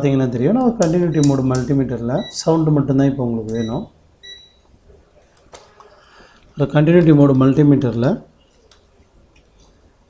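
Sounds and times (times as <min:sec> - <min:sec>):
man talking: 0:00.0 - 0:03.9, 0:06.6 - 0:08.3.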